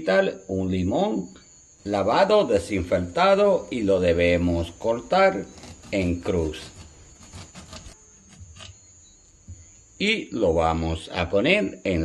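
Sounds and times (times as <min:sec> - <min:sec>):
knife cutting through lime: 0:05.5 - 0:08.8.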